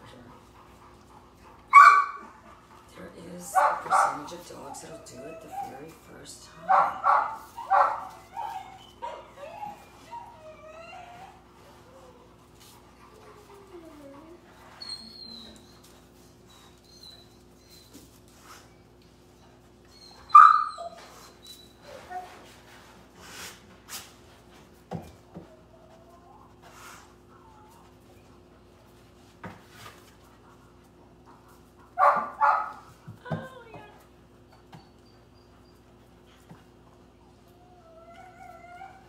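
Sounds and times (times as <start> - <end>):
puppy whining: 3.8 - 22.8, 25.1 - 28.7, 33.2 - 39.0
puppy yip: 20.0 - 21.1.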